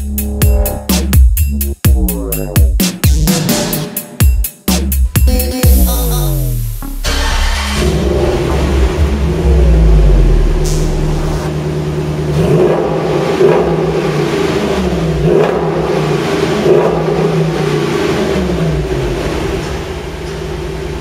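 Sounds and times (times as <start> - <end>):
car engine revving: 0.0 - 3.8, 5.6 - 21.0.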